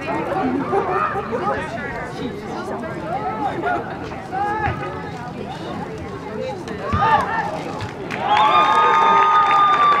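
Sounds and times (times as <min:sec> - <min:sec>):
crowd cheering and shouting: 0:06.8 - 0:10.0.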